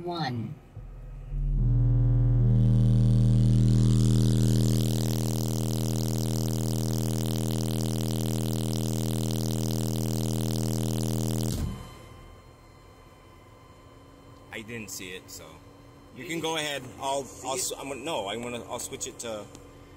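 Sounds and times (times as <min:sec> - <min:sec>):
distorted subwoofer bass tone: 0:00.7 - 0:12.1.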